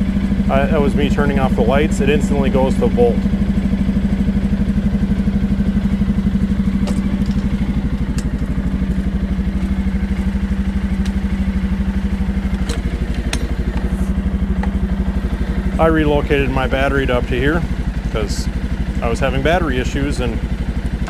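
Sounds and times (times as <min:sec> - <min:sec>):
atv engine idling: 0:00.0 - 0:21.0.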